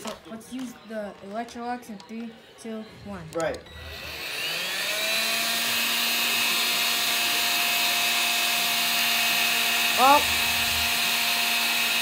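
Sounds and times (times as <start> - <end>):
stick vacuum motor whine: 3.7 - 12.0.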